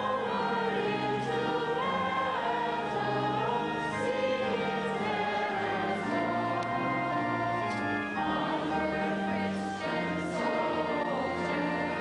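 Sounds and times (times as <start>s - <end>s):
group of voices singing chords: 0.0s - 12.0s.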